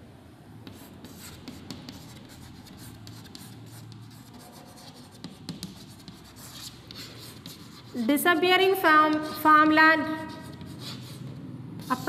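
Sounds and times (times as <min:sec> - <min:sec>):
chalk scratching on chalkboard: 0:00.7 - 0:12.0.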